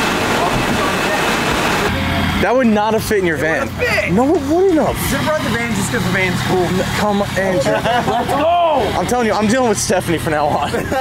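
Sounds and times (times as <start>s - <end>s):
conveyor machinery: 0.0s - 11.0s.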